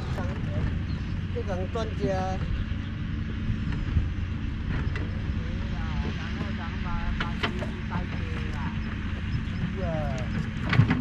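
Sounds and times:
distant conversation: 0:00.0 - 0:11.0
low rumble and hum: 0:00.0 - 0:11.0.

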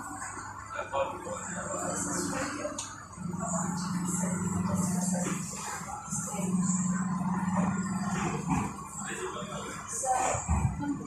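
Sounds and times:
train carriage hum: 0:00.0 - 0:11.0.

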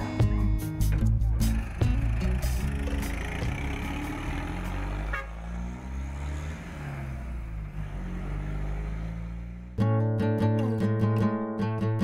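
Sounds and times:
diesel truck engine driving off: 0:00.0 - 0:09.8.

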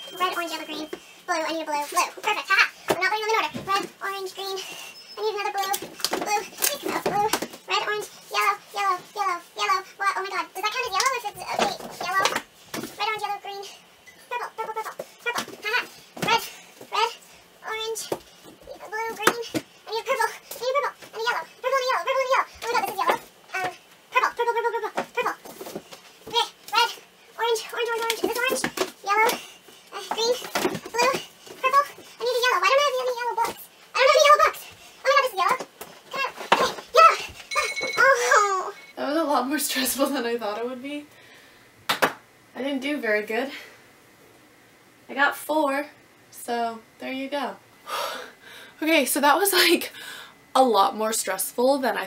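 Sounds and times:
books knocking and scraping on shelf: 0:24.9 - 0:26.4, 0:28.0 - 0:32.0
high-pitched voice: 0:26.3 - 0:39.0
woman talking quickly: 0:39.0 - 0:41.1, 0:48.8 - 0:50.0, 0:50.6 - 0:52.0.

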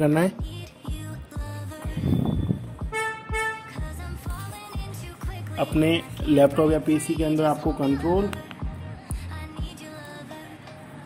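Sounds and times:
background music with beat: 0:00.0 - 0:11.0
vehicle horn honks: 0:02.2 - 0:03.8.

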